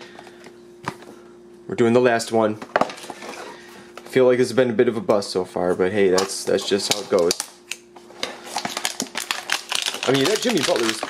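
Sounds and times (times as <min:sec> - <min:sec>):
plastic wrapper crinkling: 0:08.5 - 0:11.0.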